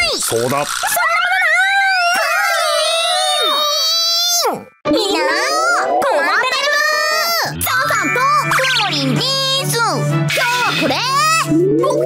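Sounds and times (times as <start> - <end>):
cartoon voices wailing: 0.9 - 7.4.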